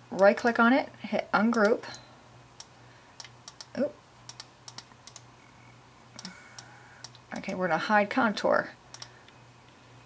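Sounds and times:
faint steady hum: 0.0 - 10.0
computer mouse clicking: 1.5 - 1.8, 2.6 - 5.3, 6.2 - 7.6, 8.9 - 9.2.

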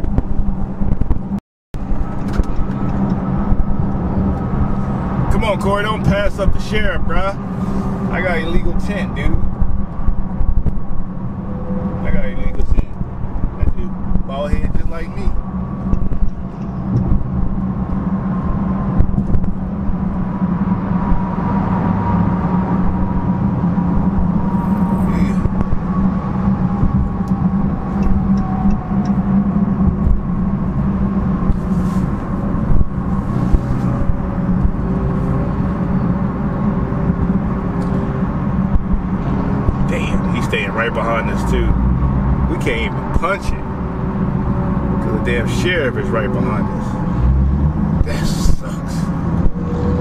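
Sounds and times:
car engine low drone: 0.0 - 50.0
road noise: 0.0 - 50.0.

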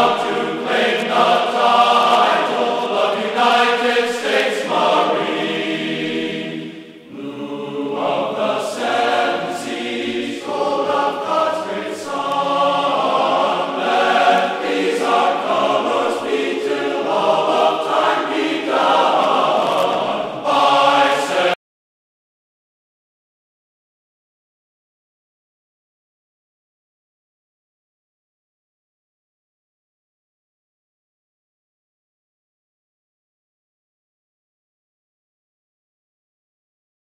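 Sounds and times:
choir singing held chords: 0.0 - 21.6.

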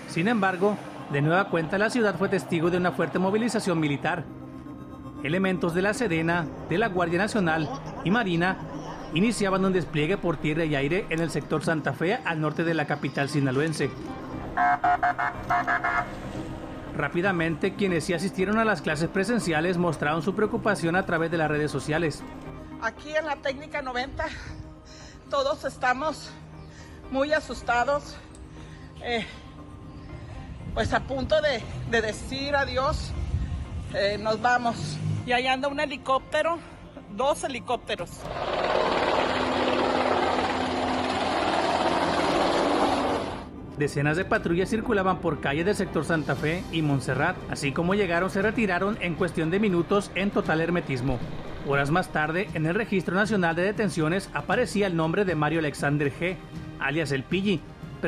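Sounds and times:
vehicles running hum: 13.8 - 17.0, 38.3 - 43.6
truck horn blasts: 14.6 - 16.2
helicopter flying overhead: 38.2 - 43.6.

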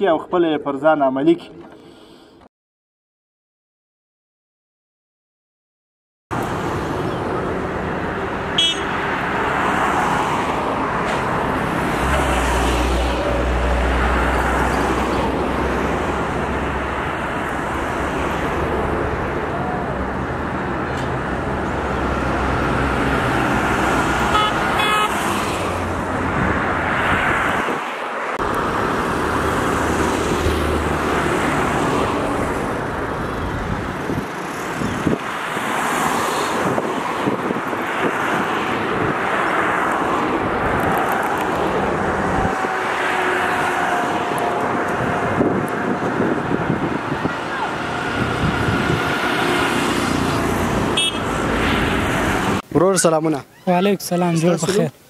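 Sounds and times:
traffic passing: 6.3 - 55.0
horn toots: 8.6 - 9.0, 24.2 - 25.5, 50.9 - 51.4.

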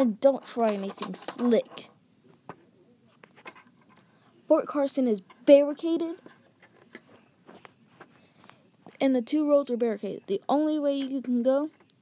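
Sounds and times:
toy cars and plastic pieces clicking: 0.4 - 1.9.

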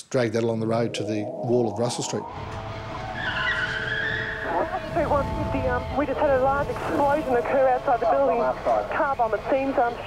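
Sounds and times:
street noise: 1.2 - 10.0.

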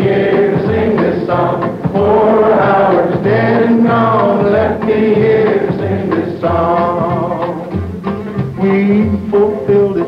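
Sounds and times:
crowd singing in unison: 0.0 - 7.7.

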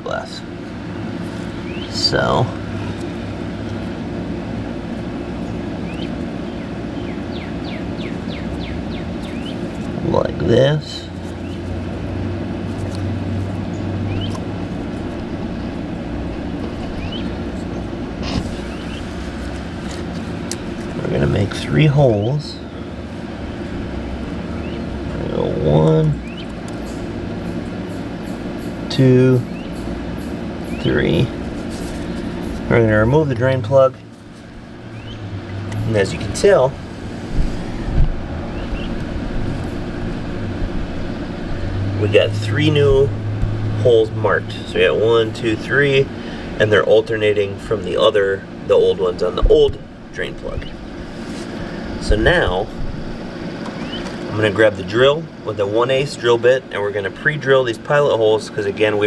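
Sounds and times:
low mechanical hum: 0.0 - 59.0
outdoor noise: 0.0 - 59.0
low rumbles on microphone: 34.0 - 45.4, 49.3 - 53.6.

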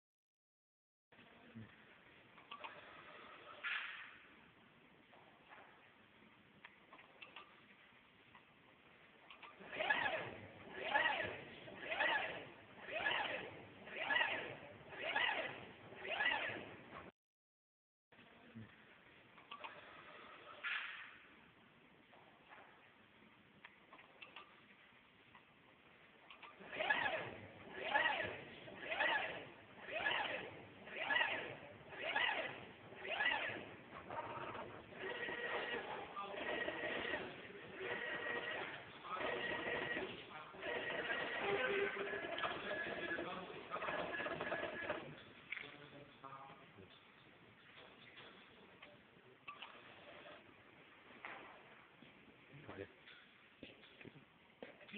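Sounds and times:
coil winding machine motor whine: 9.6 - 16.7, 26.6 - 45.1.

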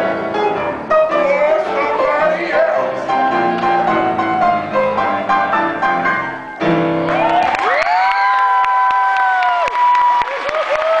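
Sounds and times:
audience cheering and applauding: 6.2 - 11.0.

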